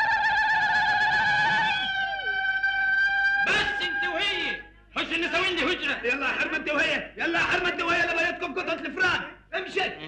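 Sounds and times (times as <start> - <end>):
women ululating: 0.0 - 4.5.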